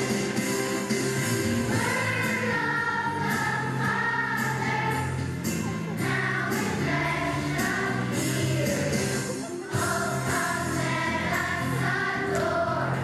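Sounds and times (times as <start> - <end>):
musical accompaniment: 0.0 - 13.0
children's choir singing: 1.6 - 13.0.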